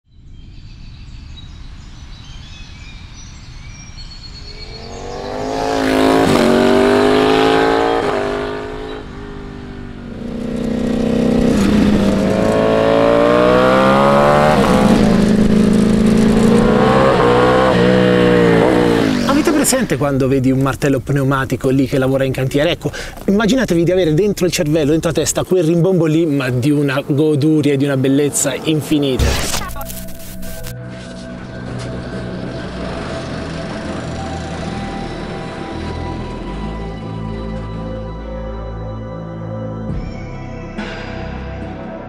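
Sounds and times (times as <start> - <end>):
faint birdsong: 0.1 - 6.2
motorcycle engine accelerating: 4.4 - 20.1, 29.2 - 37.2.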